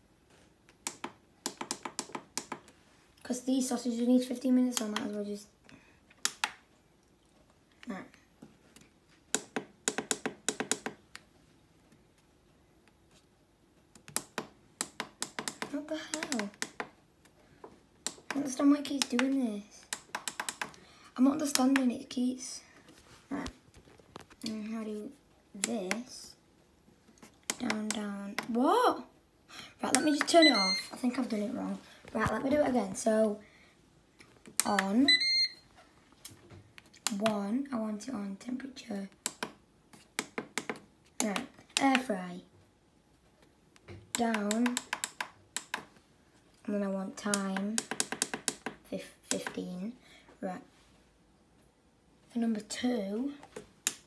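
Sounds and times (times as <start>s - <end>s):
high electronic beep: 30.0s - 31.0s, 35.0s - 35.6s.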